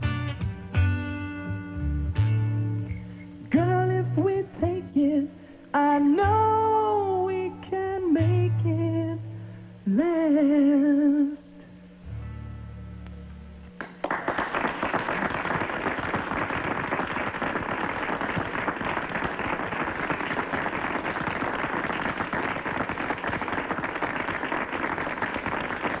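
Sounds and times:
audience applauding: 13.8s - 26.0s.

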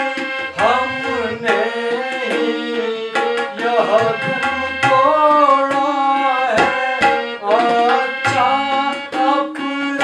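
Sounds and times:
tabla strokes: 0.0s - 9.3s
harmonium chords: 0.0s - 10.0s
man singing: 0.0s - 10.0s
deep drum booms: 0.5s - 1.8s, 3.9s - 5.4s.

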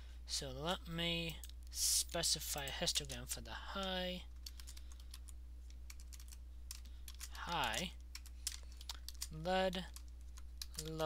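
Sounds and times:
faint electrical hum: 0.0s - 11.0s
computer keyboard typing: 2.5s - 11.0s.

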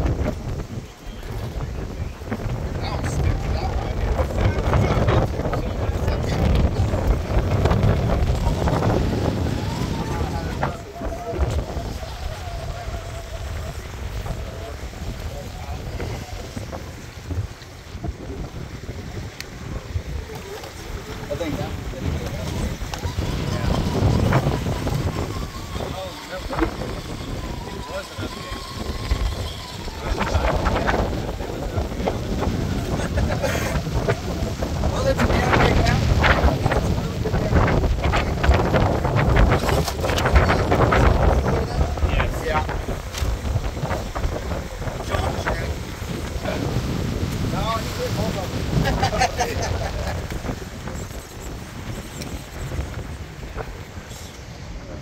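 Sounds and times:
people talking: 0.0s - 18.6s, 19.4s - 55.0s
wind buffeting microphone: 0.0s - 55.0s.

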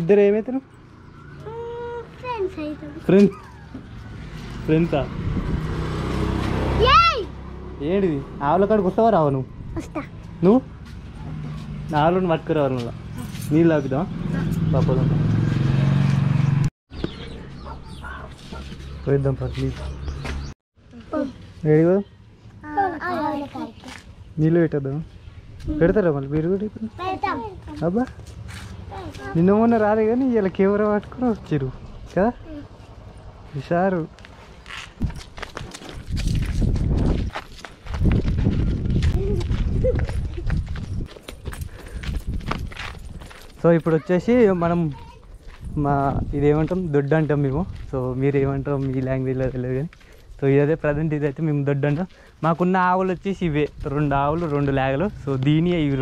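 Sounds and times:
wind buffeting microphone: 5.1s - 6.0s, 35.0s - 43.4s, 44.2s - 49.6s
running footsteps on dirt: 34.2s - 44.1s, 44.8s - 45.8s, 46.5s - 50.4s.

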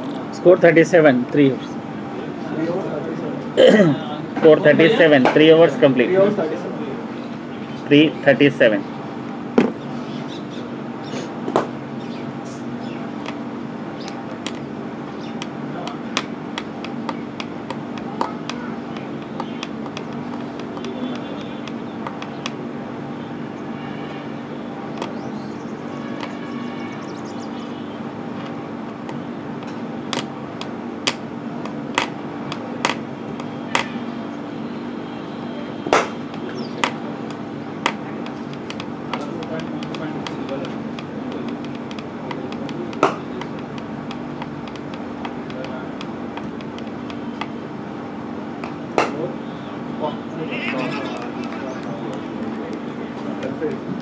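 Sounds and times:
distant voices: 0.0s - 54.0s
steady low hum: 0.0s - 54.0s.

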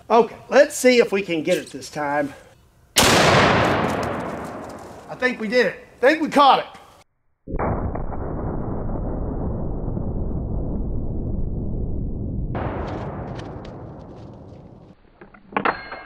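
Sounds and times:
slowed rifle shot boom: 3.0s - 4.9s, 7.5s - 15.0s.

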